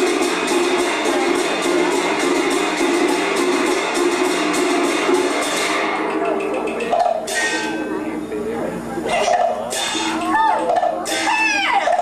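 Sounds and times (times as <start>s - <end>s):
steady held accompaniment tone: 0.0s - 12.0s.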